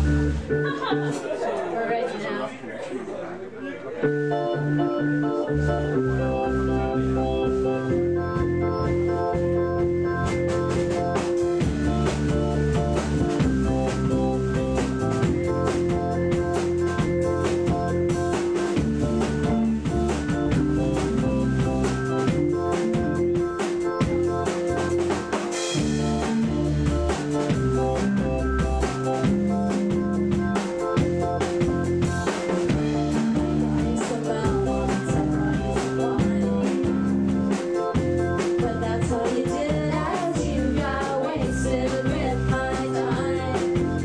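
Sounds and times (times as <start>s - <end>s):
drum kit beat: 0.0s - 1.4s, 4.4s - 44.0s
organ-like keyboard chords: 0.0s - 2.5s, 4.0s - 44.0s.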